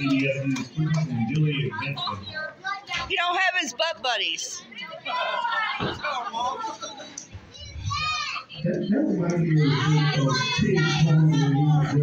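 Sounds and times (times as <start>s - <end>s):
child shouting: 7.6s - 8.5s.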